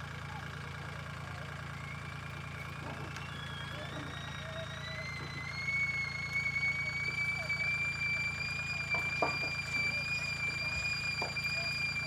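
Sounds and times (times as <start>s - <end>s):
tractor engine idling: 0.0s - 12.0s
thin high whine: 3.2s - 12.0s.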